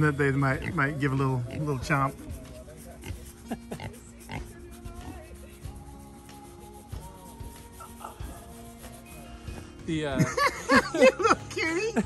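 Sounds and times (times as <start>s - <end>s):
pigs grunting: 0.5s - 2.2s, 2.9s - 4.6s.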